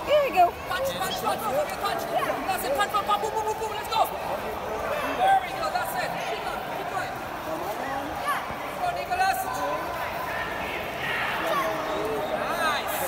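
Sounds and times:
people shouting and chattering: 0.0 - 13.0.

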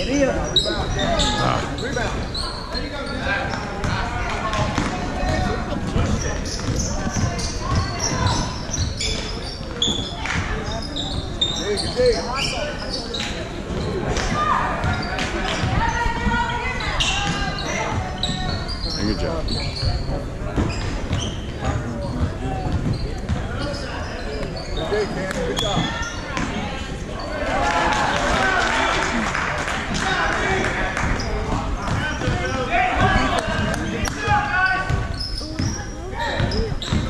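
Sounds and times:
basketball bouncing on hardwood: 36.4 - 37.0.

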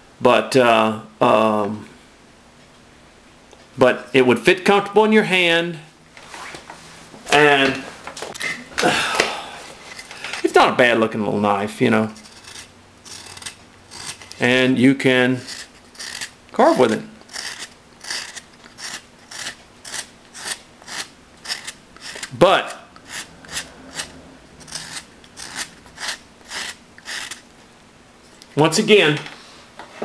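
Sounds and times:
knife blade shaving wood: 12.1 - 14.6, 15.4 - 27.4.

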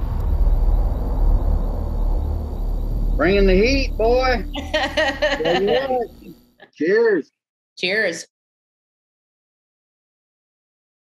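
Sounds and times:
steady low rumble: 0.0 - 6.5
faint hiss: 0.0 - 7.2.

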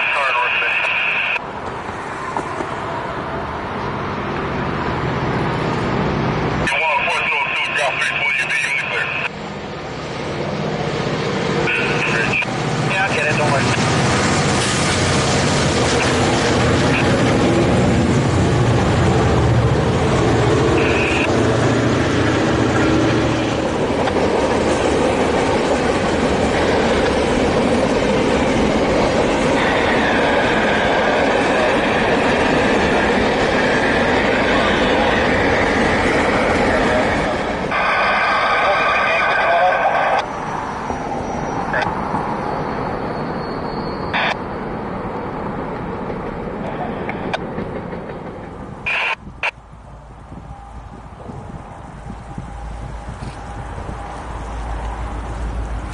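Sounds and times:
train wheels rumbling on rail: 0.7 - 6.7, 8.6 - 55.9
high wheel squeal: 40.2 - 44.7.

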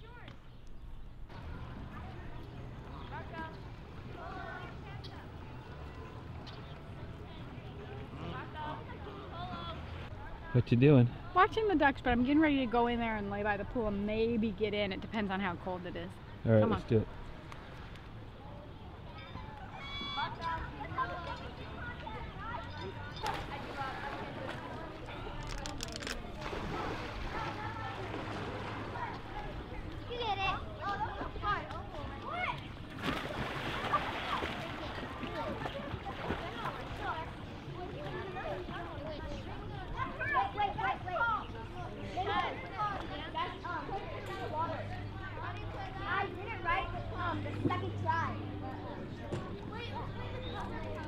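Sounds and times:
distant people's voices: 0.0 - 51.0
open-air background noise: 0.0 - 51.0
people talking and calling out: 0.0 - 51.0.

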